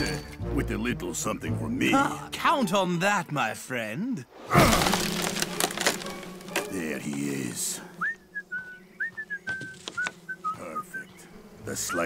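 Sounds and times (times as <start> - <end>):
person whistling a tune: 8.0 - 10.9.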